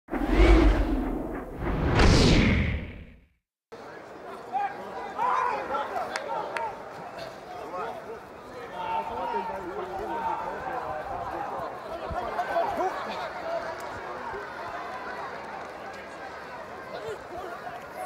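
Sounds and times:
whooshing sweeps: 0.1 - 3.2
stadium crowd murmuring: 3.7 - 18.0.

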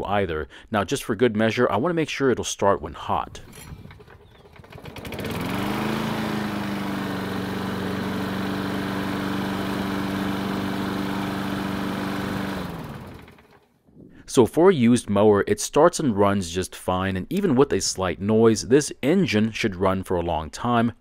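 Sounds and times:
lawn mower engine: 3.4 - 13.8.

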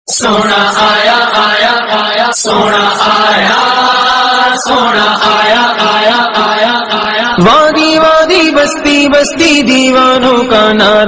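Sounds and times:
melodic religious chanting: 0.1 - 11.0.

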